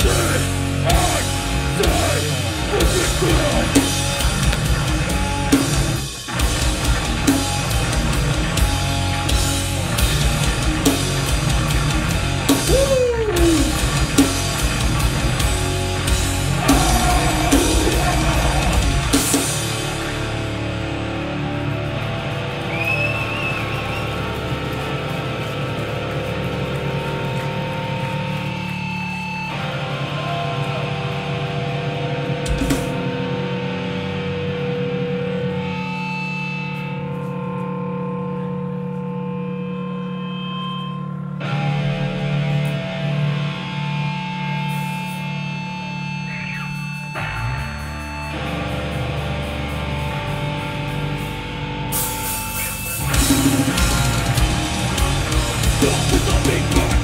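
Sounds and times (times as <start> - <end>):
distorted electric guitars: 0.0 - 57.0.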